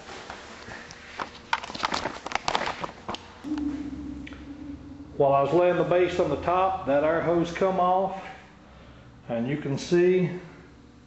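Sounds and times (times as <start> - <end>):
steady low hum: 2.9 - 11.0.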